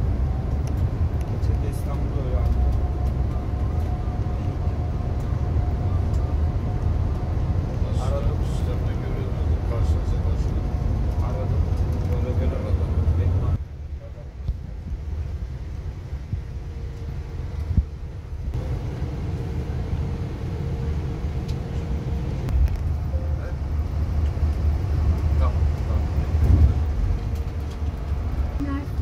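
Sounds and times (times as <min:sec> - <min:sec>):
coach engine and tyre rumble: 0:00.0 - 0:29.0.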